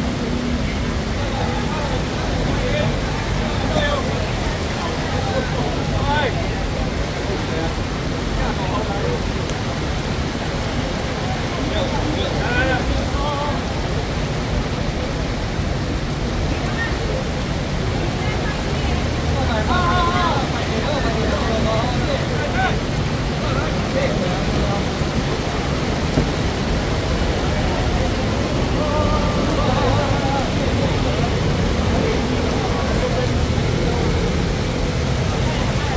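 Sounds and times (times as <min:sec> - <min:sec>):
crowd voices: 0:00.0 - 0:35.9
heavy rain on street: 0:00.0 - 0:35.9.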